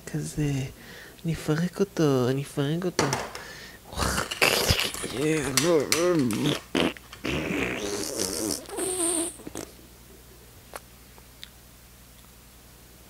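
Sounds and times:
man making wordless vocal noises: 3.8s - 6.8s.

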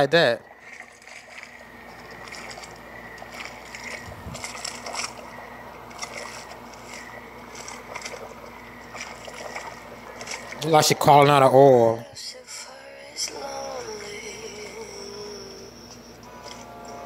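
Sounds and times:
faint steady hum: 0.0s - 17.0s
thick liquid sloshing: 0.4s - 11.4s.

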